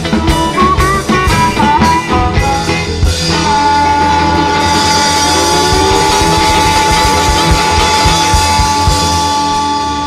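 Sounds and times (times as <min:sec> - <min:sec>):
blues band playing: 0:00.0 - 0:10.0
drum beats: 0:00.0 - 0:10.0
resonator guitar: 0:00.0 - 0:10.0
long held high note: 0:01.0 - 0:10.0.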